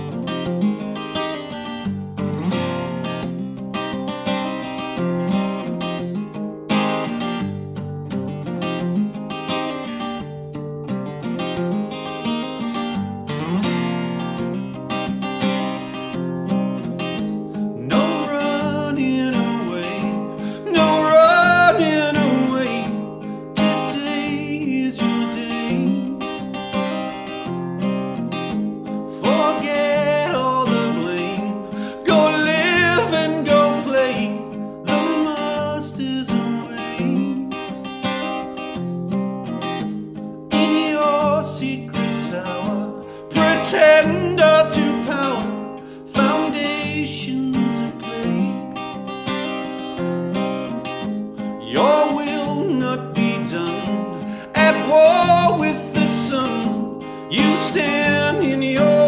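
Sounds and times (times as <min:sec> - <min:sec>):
acoustic guitar: 0:00.0 - 0:59.0
man singing folk song: 0:11.2 - 0:59.0.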